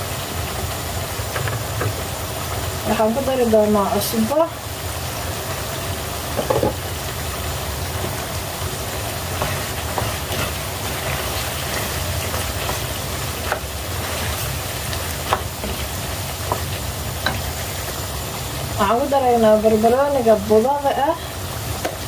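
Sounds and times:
food sizzling in a pan: 0:00.0 - 0:22.0.

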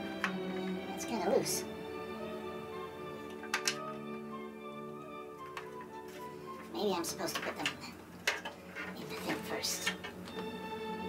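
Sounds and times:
plastic cover hinges clicking: 0:03.3 - 0:03.9.

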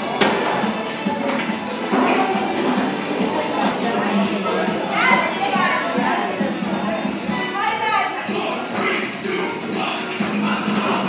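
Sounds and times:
music playing: 0:00.0 - 0:11.0
women chattering: 0:00.6 - 0:10.6.

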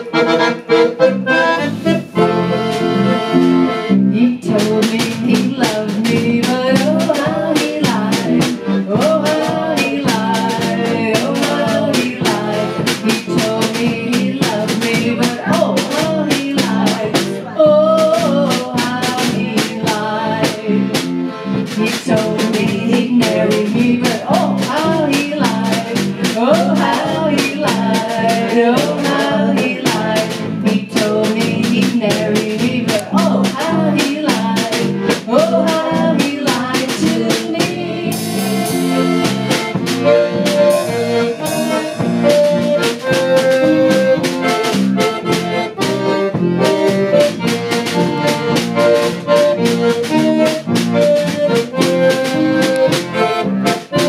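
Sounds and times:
concertina melody: 0:00.0 - 0:54.0
drums polka beat: 0:00.0 - 0:54.0
electric bass guitar: 0:00.0 - 0:54.0.

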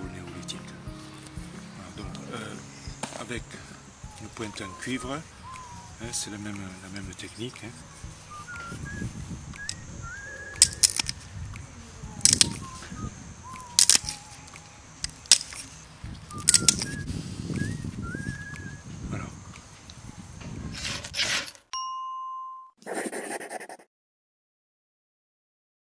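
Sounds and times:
birds chirping: 0:00.0 - 0:20.4
sharp clicks of flint flaking: 0:09.5 - 0:09.9, 0:10.6 - 0:11.6, 0:12.2 - 0:12.8, 0:13.5 - 0:17.7.

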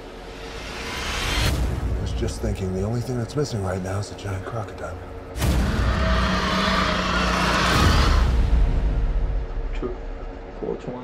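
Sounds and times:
dramatic music: 0:00.0 - 0:11.0.

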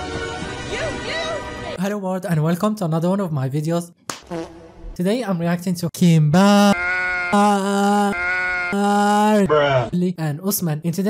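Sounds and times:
man speaking: 0:05.0 - 0:08.2, 0:08.8 - 0:11.0
man laughing: 0:06.4 - 0:09.5.

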